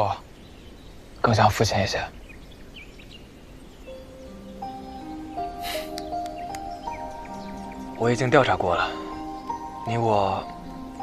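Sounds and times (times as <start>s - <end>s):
faint bird chirps: 0.0s - 11.0s
soft held music notes: 3.7s - 11.0s.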